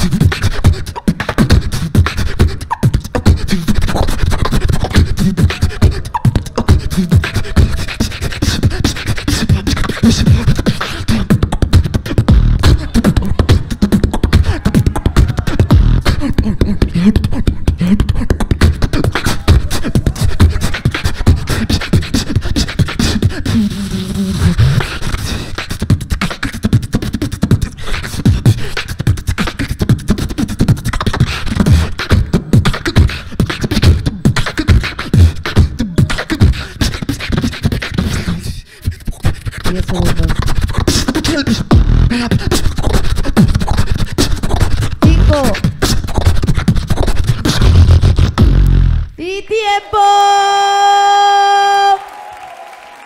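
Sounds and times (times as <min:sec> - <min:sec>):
person beatboxing into microphone: 0:00.0 - 0:49.2.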